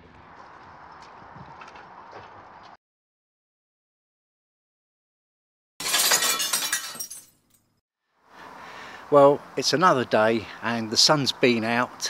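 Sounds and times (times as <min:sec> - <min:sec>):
glass breaking and shattering: 0:05.8 - 0:07.7
tinkling glass shards: 0:05.8 - 0:07.7
faint outdoor background noise: 0:08.2 - 0:12.0.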